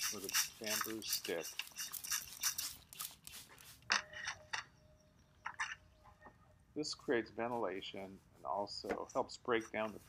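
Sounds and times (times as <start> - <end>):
spray bottle squirting: 0.0 - 3.9.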